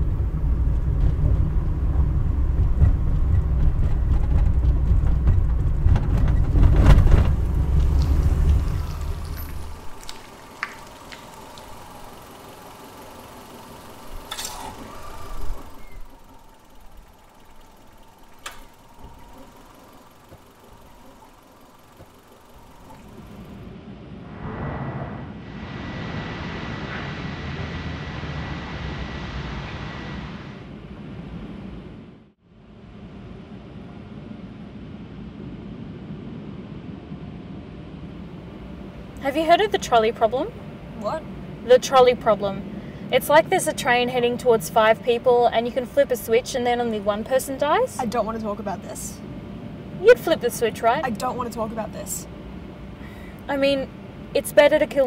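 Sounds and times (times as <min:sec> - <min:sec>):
car engine rumbling: 0:00.0 - 0:33.8, 0:37.4 - 0:55.0
faint thin whine: 0:07.4 - 0:32.0.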